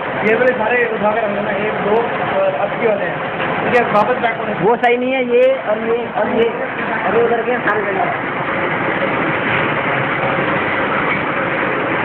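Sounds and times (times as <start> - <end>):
printing machine humming: 0.0 - 12.0.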